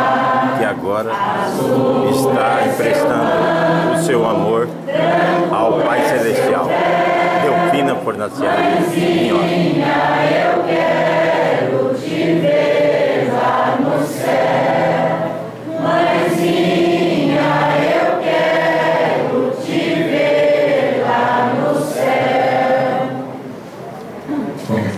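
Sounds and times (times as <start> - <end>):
group singing a hymn: 0.0 - 23.7.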